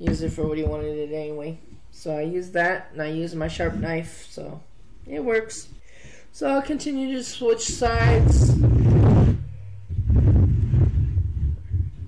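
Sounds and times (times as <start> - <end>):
wooden board rubbing on tabletop: 7.7 - 12.0.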